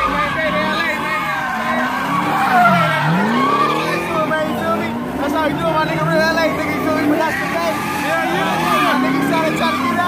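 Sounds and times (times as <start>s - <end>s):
car engine revving: 0.0s - 10.0s
crowd chatter: 0.0s - 10.0s
people talking close by: 0.0s - 10.0s.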